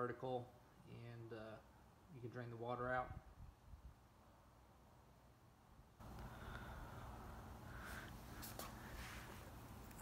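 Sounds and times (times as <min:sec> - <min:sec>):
steady hiss and low hum: 0:00.0 - 0:10.0.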